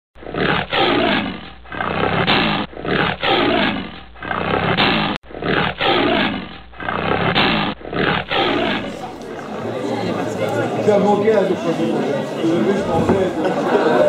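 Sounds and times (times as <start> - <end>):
lion roaring and grunting: 0.2 - 9.1.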